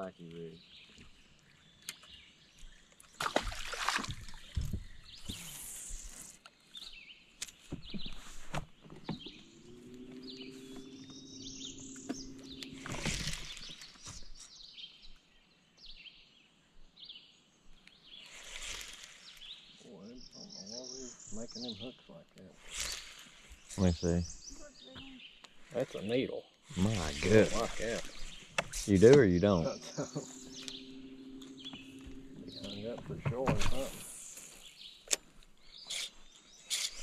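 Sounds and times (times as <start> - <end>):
birds chirping: 0.0 - 37.0
water splashes: 3.1 - 4.8
low hum: 9.2 - 14.3, 26.8 - 34.6.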